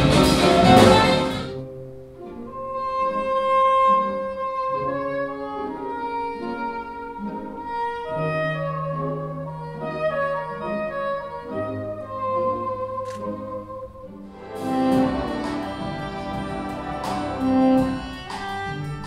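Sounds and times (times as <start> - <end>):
jazz rhythm section with bass: 0.0 - 1.8, 14.3 - 19.0
saxophone melody: 0.0 - 19.0
string orchestra: 0.0 - 19.0.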